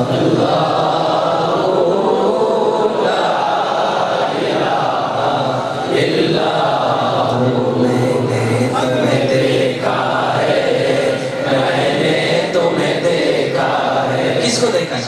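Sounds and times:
man chanting: 5.2s - 15.0s.

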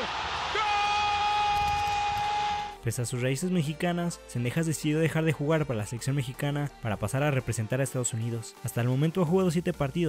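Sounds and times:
stadium crowd noise: 0.0s - 2.7s.

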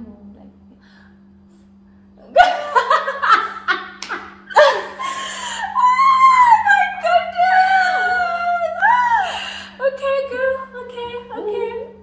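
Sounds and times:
women laughing loudly: 2.4s - 9.4s.

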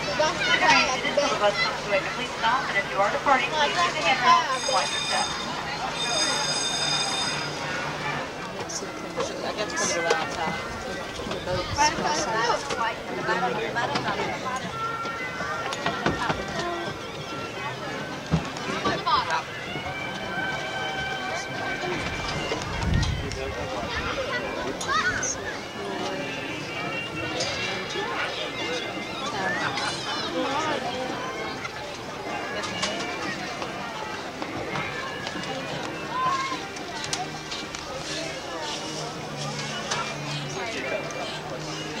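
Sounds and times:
outdoor background noise: 0.0s - 42.0s
people talking at once: 0.0s - 42.0s.

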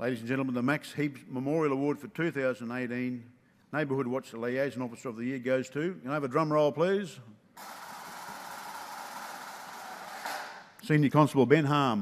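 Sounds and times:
man speaking: 0.0s - 7.3s, 10.8s - 12.0s
drum roll: 7.6s - 10.7s.

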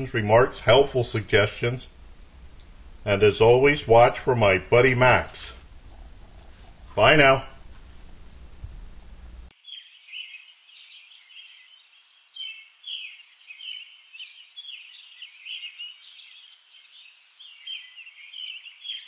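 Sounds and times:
low room hum: 0.0s - 9.5s
birds singing and chirping: 9.5s - 19.0s.

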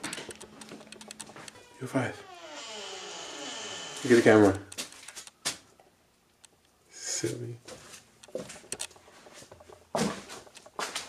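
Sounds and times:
gimbal clicks and rattles: 0.0s - 1.6s.

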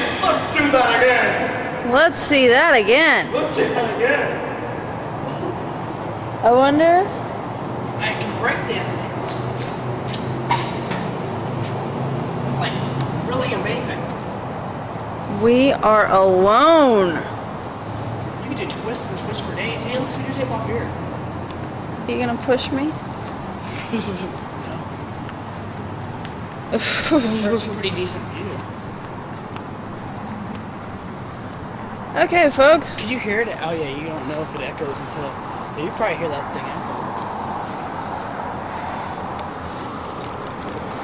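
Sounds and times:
distant traffic hum: 0.0s - 41.0s
short scuffs and taps: 9.2s - 11.8s.

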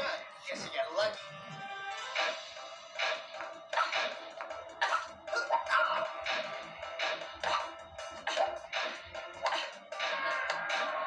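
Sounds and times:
music with pulsing beat on television: 0.0s - 11.0s.

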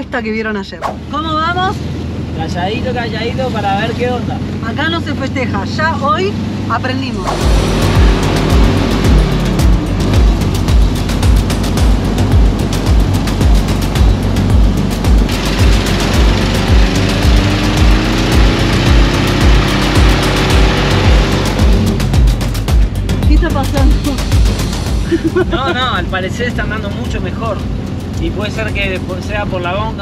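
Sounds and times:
music with repeating bass beat: 7.2s - 30.0s.

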